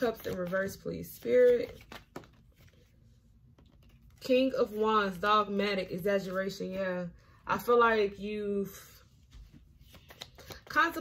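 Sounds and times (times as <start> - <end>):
cards clicking in the hand: 9.9 - 10.7.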